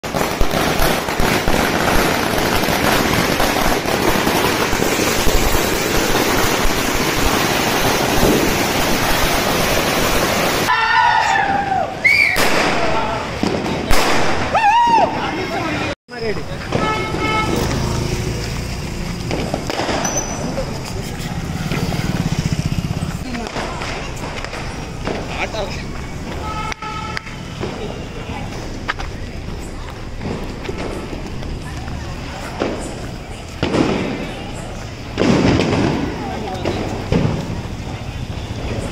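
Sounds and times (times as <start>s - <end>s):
firecracker string crackling: 0.0s - 10.8s, 16.1s - 38.9s
street noise: 0.0s - 38.9s
vehicle horn: 16.7s - 17.8s, 26.4s - 27.6s.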